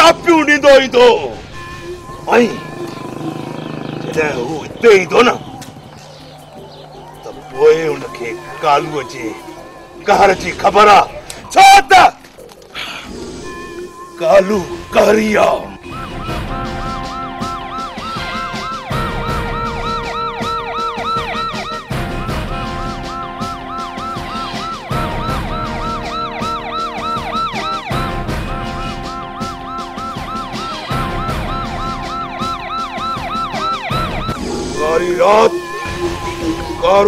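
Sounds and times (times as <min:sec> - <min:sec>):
police siren wailing: 0:00.0 - 0:37.0
background music with held chords: 0:13.2 - 0:37.0.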